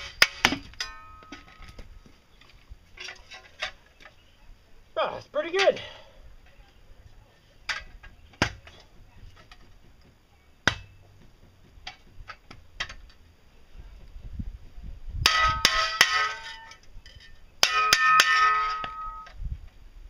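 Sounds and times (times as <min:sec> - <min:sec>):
shovel blade clanging on metal: 0:00.0 - 0:01.8, 0:15.3 - 0:19.3.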